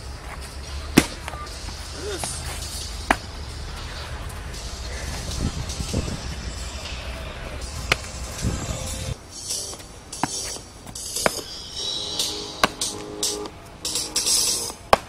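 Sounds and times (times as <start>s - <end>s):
low rumble: 0.0s - 9.2s
dance music: 0.0s - 14.9s
hissing cymbal-like sounds: 0.0s - 14.9s
sharp hits: 0.0s - 15.0s.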